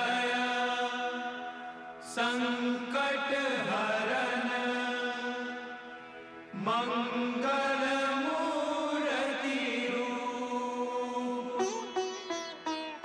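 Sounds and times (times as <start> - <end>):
devotional chant music over a drone: 0.0 - 12.5.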